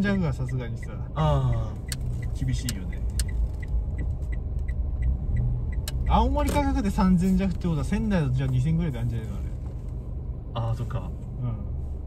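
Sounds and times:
faint light ticking: 0:00.0 - 0:06.6
car road and engine rumble: 0:00.0 - 0:12.0
sharp click: 0:01.8 - 0:04.7.

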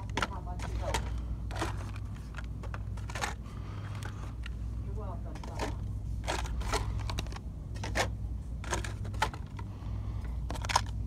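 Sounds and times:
plastic packs clacking: 0:00.0 - 0:04.6, 0:05.3 - 0:09.7, 0:10.4 - 0:11.0.

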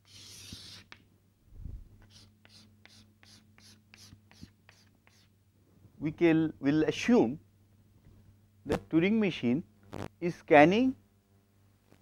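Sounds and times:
chalk scratching on blackboard: 0:00.0 - 0:01.0, 0:02.0 - 0:05.3.

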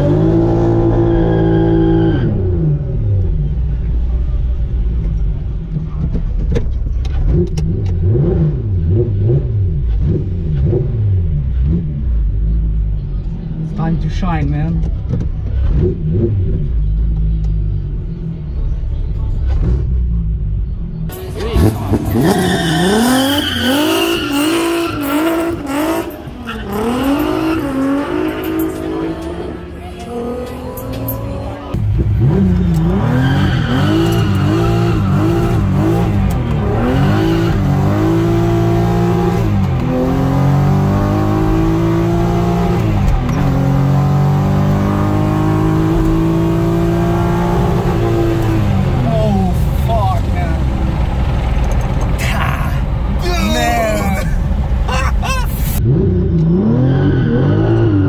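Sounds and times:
car engine revving: 0:00.0 - 0:18.6, 0:19.2 - 0:58.0.

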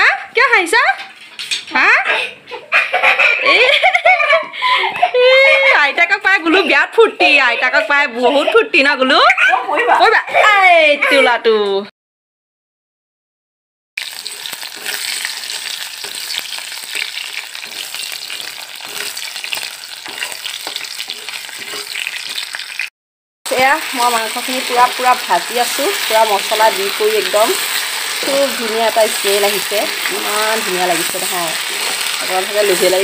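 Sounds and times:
food sizzling in hot oil: 0:14.0 - 0:22.9, 0:23.5 - 0:33.0
metal spatula stir-frying: 0:14.0 - 0:22.9, 0:23.5 - 0:33.0
person speaking: 0:23.5 - 0:27.6, 0:28.2 - 0:31.6, 0:32.2 - 0:33.0.

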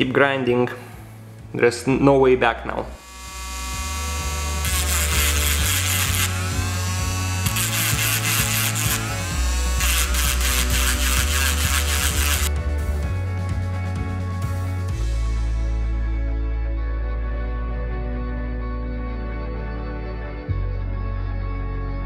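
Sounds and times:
background music with bass line: 0:00.0 - 0:22.0
rotary tool grinding amber: 0:03.0 - 0:12.5.

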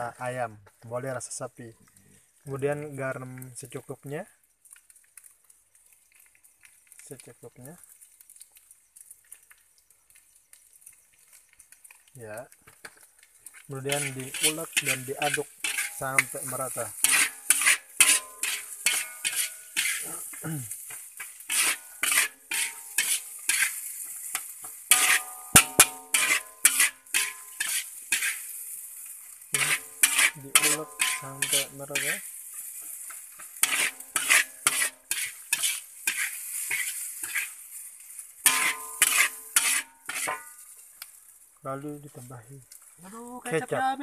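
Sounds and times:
rice and noodles sizzling in a wok: 0:00.0 - 0:44.0
small crackles: 0:00.6 - 0:44.0.

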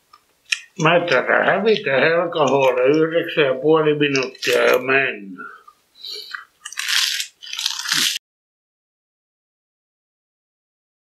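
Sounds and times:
lettuce leaves crunching: 0:00.5 - 0:03.3, 0:04.0 - 0:05.1, 0:06.0 - 0:08.2.

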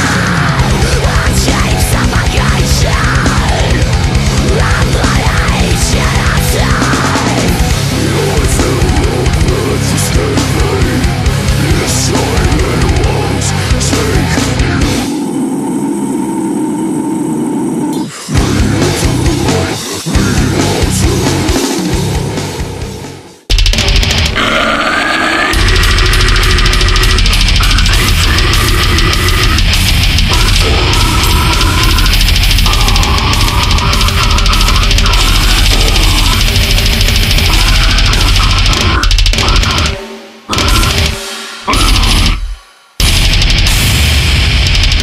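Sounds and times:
deathcore metal music: 0:00.0 - 0:45.0
heavy metal breakdown: 0:00.0 - 0:45.0
heavy metal track: 0:00.0 - 0:45.0
rapid drum hits: 0:23.5 - 0:24.6, 0:25.6 - 0:45.0.

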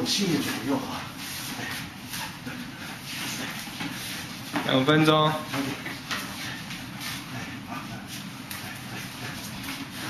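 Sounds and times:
hard breathing: 0:00.9 - 0:04.4, 0:06.1 - 0:10.0.

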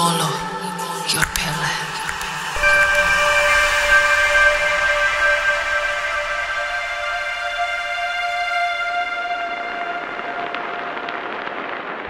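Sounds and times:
held synthesizer chord: 0:01.9 - 0:11.7.

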